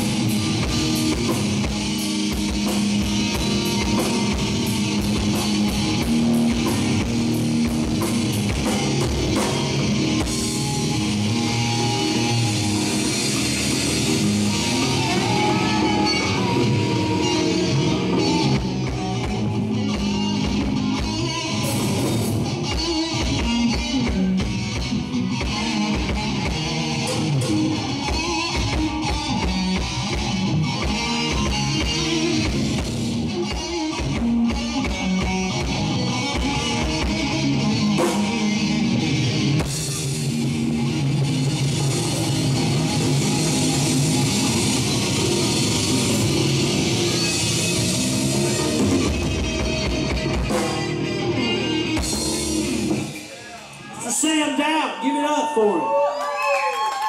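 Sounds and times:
rock band playing: 0:00.0 - 0:57.0.

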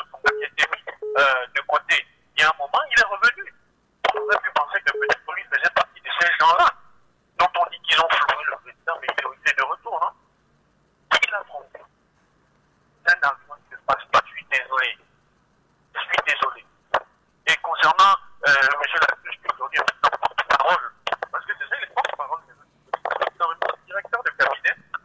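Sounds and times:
person speaking over telephone: 0:00.0 - 0:03.5, 0:04.1 - 0:06.8, 0:07.4 - 0:10.2, 0:11.1 - 0:11.9, 0:16.0 - 0:16.7, 0:17.5 - 0:25.0.

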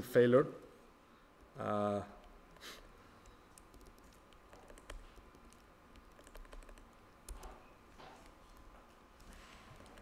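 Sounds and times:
computer keyboard keystrokes: 0:02.2 - 0:07.6, 0:08.2 - 0:10.0.

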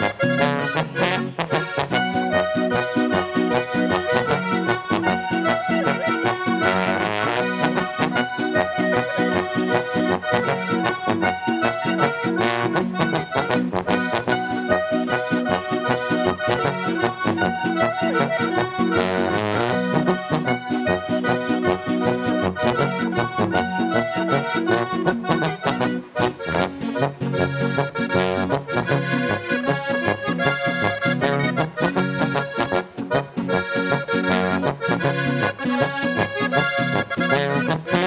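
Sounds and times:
button accordion: 0:00.0 - 0:38.0
electric guitar: 0:00.0 - 0:38.0.

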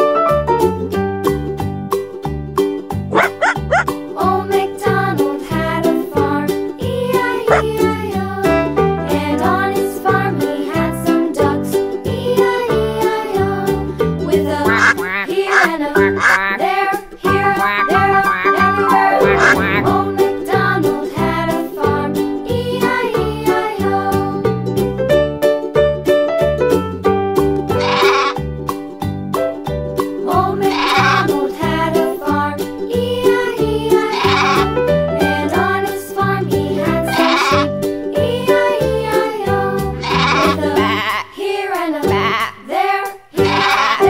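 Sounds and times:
children's song music: 0:00.0 - 0:44.0
cartoon duck quacks: 0:03.2 - 0:03.8, 0:14.7 - 0:16.7, 0:17.4 - 0:20.0, 0:27.8 - 0:28.4, 0:34.2 - 0:34.7, 0:37.1 - 0:37.7, 0:40.0 - 0:41.3, 0:43.4 - 0:44.0
sheep bleating: 0:14.7 - 0:16.6, 0:17.5 - 0:20.0, 0:27.8 - 0:28.4, 0:30.6 - 0:31.3, 0:34.1 - 0:34.7, 0:37.1 - 0:37.7, 0:40.0 - 0:41.3, 0:42.1 - 0:42.6, 0:43.4 - 0:44.0.

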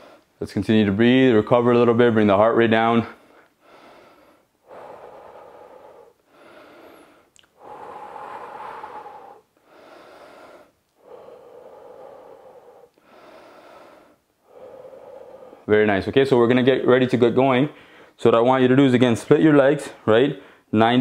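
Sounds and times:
man breathing deeply: 0:00.0 - 0:00.4, 0:03.0 - 0:15.8, 0:17.7 - 0:18.2, 0:20.4 - 0:20.7.

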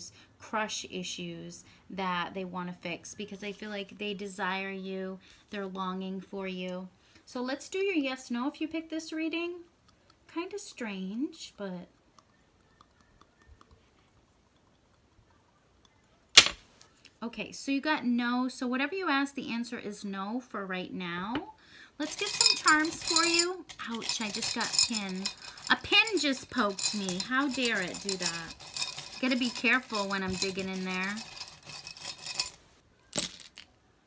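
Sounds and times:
metal coin landing on cloth: 0:16.4 - 0:16.7, 0:33.1 - 0:33.6
small charms clicking in glass jar: 0:22.0 - 0:32.6.

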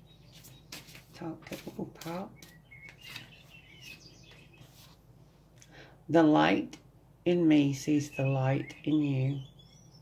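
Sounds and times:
card rustling: 0:00.3 - 0:05.0.

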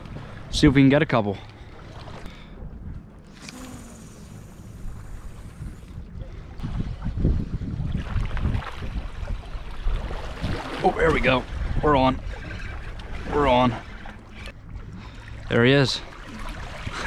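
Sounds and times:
wind buffeting microphone: 0:01.8 - 0:15.0.

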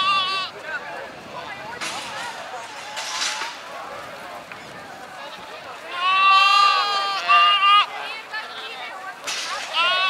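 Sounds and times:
sheep bleating: 0:00.0 - 0:00.5, 0:05.9 - 0:08.0, 0:09.7 - 0:10.0.

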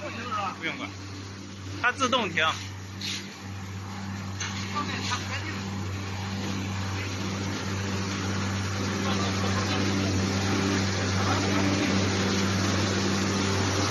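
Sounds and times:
low machine drone: 0:00.0 - 0:13.9.

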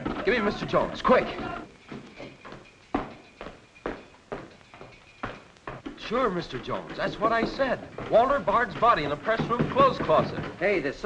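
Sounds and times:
sharp knocks: 0:01.9 - 0:11.0.

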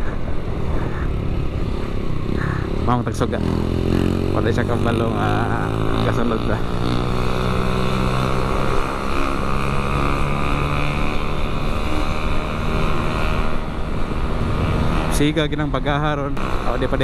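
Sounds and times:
motorcycle engine accelerating: 0:01.0 - 0:17.0.

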